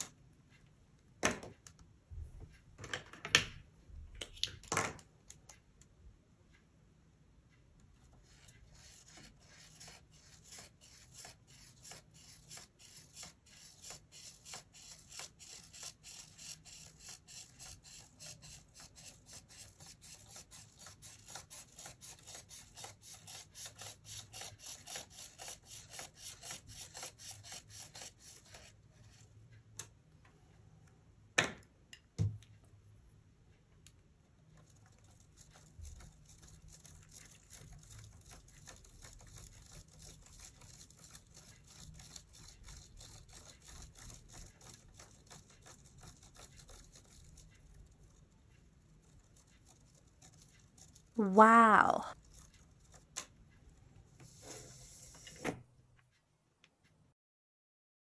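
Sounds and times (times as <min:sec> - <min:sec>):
felt-tip pen rubbing on paper: 0:08.2 - 0:29.2, 0:35.0 - 0:47.9.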